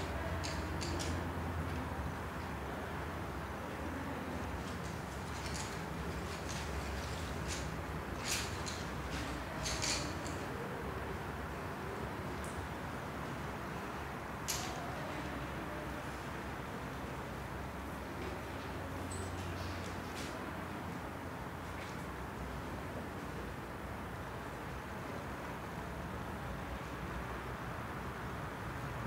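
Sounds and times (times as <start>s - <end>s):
faint clicks and rustles: 0.0s - 26.0s
steady low hum: 0.0s - 29.0s.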